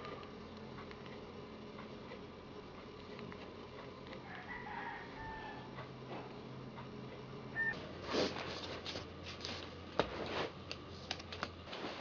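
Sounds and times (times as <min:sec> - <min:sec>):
rooster crowing faintly: 0:04.2 - 0:05.8
short beep: 0:07.6 - 0:07.8.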